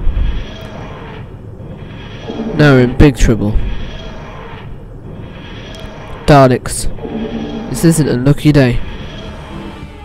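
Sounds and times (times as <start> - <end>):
low rumbling drone with hiss: 0.0 - 10.0.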